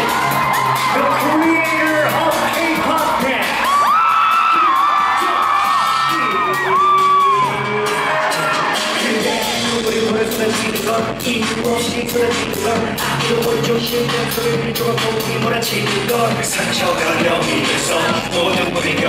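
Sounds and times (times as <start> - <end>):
audience cheering and screaming: 0.0 - 9.6
music from speakers: 0.0 - 19.0.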